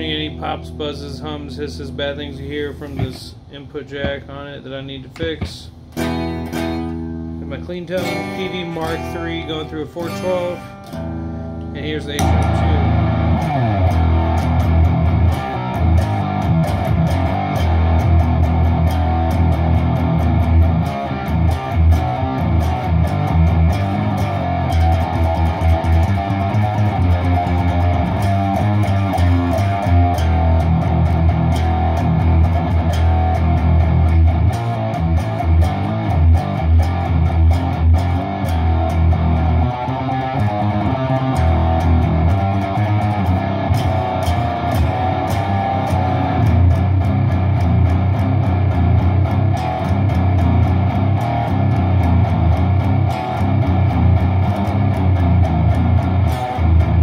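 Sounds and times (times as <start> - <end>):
distorted electric guitar riffing: 0.0 - 57.0.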